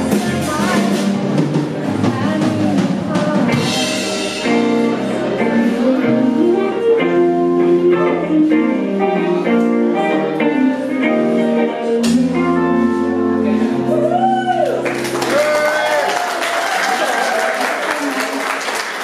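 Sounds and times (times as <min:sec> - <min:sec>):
live rock band playing: 0:00.0 - 0:16.4.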